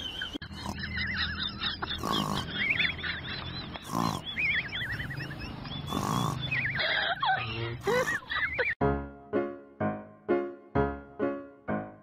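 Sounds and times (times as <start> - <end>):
dog grunting: 1.8 - 2.8, 3.8 - 4.6, 5.8 - 7.0.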